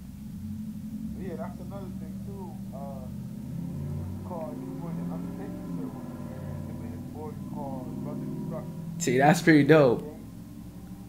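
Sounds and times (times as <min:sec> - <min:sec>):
steady low hum: 0:00.0 - 0:11.0
man talking over voice call: 0:01.2 - 0:03.1, 0:04.3 - 0:10.2.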